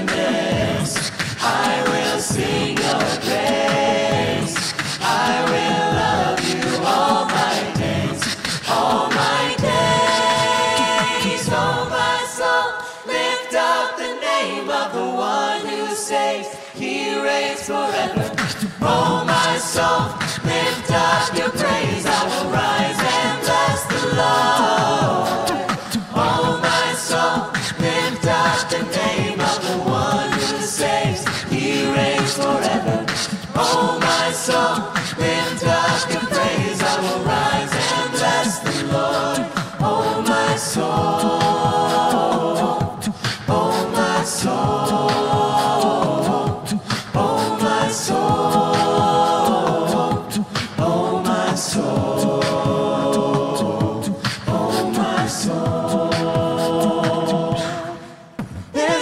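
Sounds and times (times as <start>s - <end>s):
choir singing a cappella: 0.0s - 59.0s.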